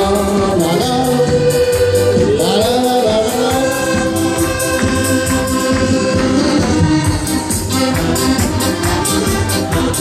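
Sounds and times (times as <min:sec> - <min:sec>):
man singing into a microphone: 0:00.0 - 0:04.5
accordions playing a tune: 0:00.0 - 0:10.0
steady beat: 0:00.0 - 0:10.0.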